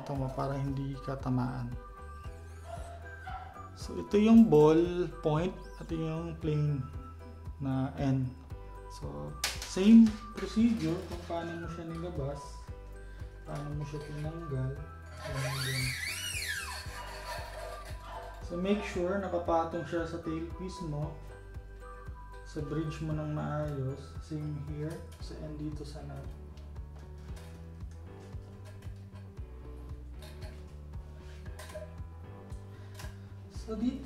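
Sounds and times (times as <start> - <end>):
background music: 0.0 - 34.0
guitar string squealing through bridge: 15.1 - 18.4.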